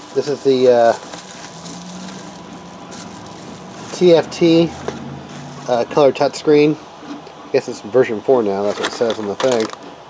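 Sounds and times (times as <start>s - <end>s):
bubble wrap crinkling: 0.0s - 6.3s.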